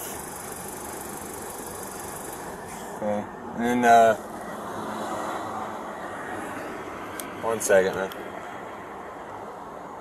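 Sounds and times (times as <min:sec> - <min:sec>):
traffic hum and hiss: 0:00.0 - 0:10.0.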